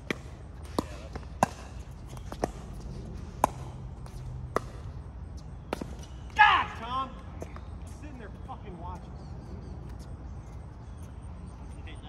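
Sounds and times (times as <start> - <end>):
player shouting: 6.4 - 7.2.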